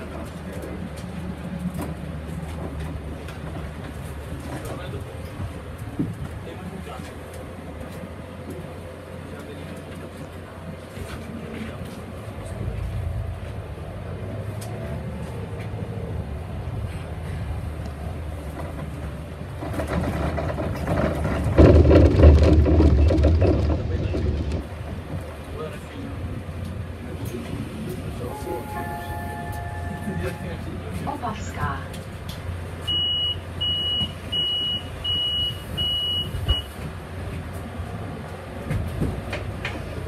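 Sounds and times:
bus engine: 0:00.0 - 0:40.0
road noise: 0:00.0 - 0:40.0.

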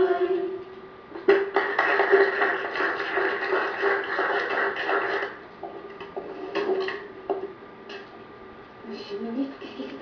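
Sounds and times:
people applauding: 0:01.3 - 0:05.4.

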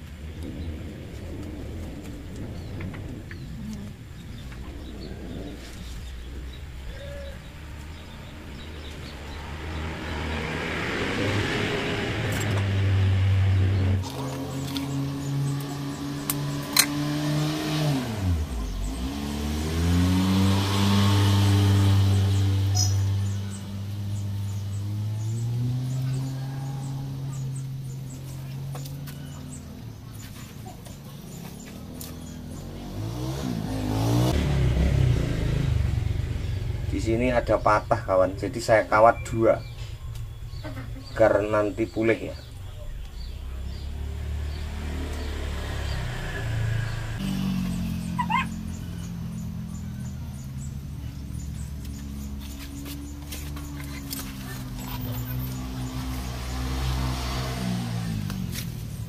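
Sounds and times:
another engine: 0:00.0 - 0:59.0
vehicle engine running: 0:00.0 - 0:59.0.

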